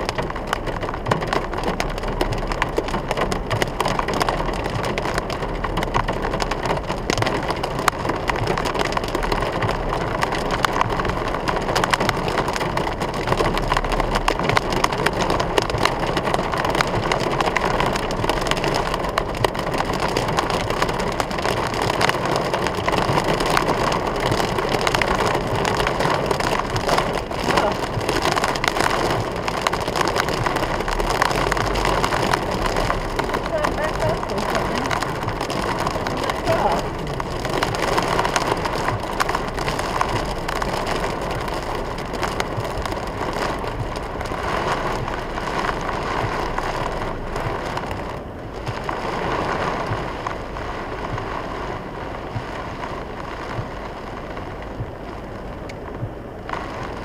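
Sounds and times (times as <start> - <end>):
heavy rain on a car roof: 0.0 - 57.0.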